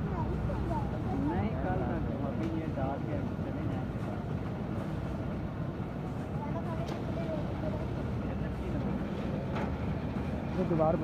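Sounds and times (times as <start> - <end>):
faint voices of workers: 0.0 - 11.0.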